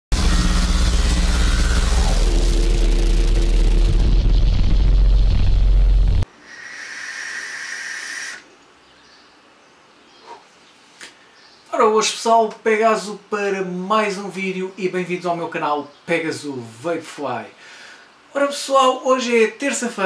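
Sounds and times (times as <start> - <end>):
rumble with falling pitch sweep: 0.1 - 6.2
quiet hiss: 6.2 - 20.0.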